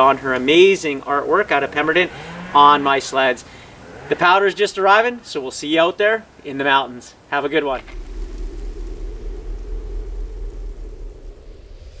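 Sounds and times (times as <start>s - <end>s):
steady low rumble: 7.4s - 12.0s
hiss: 7.6s - 12.0s.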